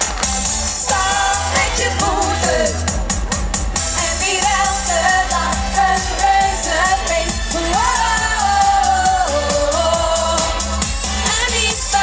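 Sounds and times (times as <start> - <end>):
pop backing track with beat: 0.0 - 12.0
woman singing into a microphone: 0.8 - 2.9, 4.0 - 12.0.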